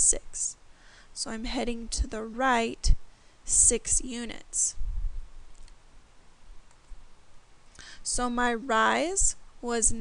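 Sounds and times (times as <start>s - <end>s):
faint hiss: 3.0s - 10.0s
soft clicks: 5.5s - 5.8s.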